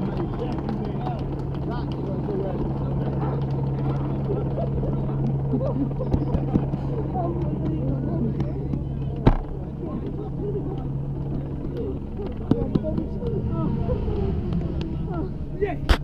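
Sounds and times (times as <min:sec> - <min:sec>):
chatter of people: 0:00.0 - 0:16.0
low hum: 0:00.0 - 0:16.0.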